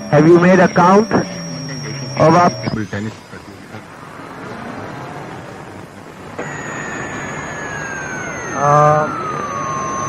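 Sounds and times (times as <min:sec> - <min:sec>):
radio static hissing: 0:00.0 - 0:10.0.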